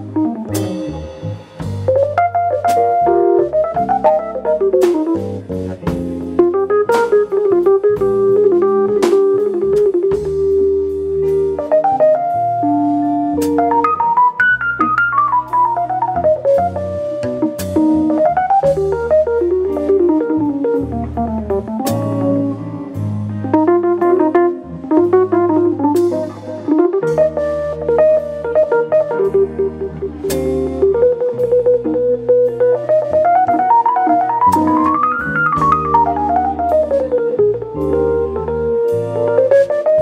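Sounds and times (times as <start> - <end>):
drum kit: 0.0 - 40.0
electric bass: 0.0 - 40.0
piano solo: 0.0 - 40.0.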